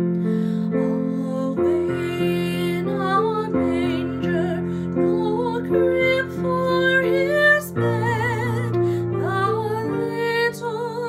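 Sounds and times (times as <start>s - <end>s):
woman singing with vibrato: 1.2s - 11.0s.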